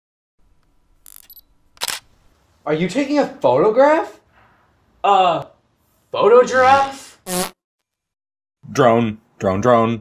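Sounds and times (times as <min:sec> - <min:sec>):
high-pitched camera beep: 0:01.1 - 0:02.0
camera shutter click: 0:01.1 - 0:02.1.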